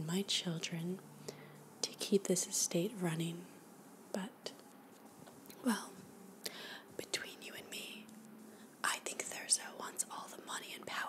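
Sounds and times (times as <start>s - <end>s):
woman whispering: 1.8s - 3.5s, 4.2s - 4.6s, 5.6s - 6.0s, 7.0s - 8.1s, 8.8s - 11.0s.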